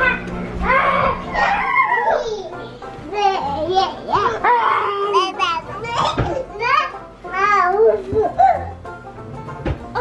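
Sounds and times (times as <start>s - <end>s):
children's playful vocal sounds: 0.0s - 8.5s.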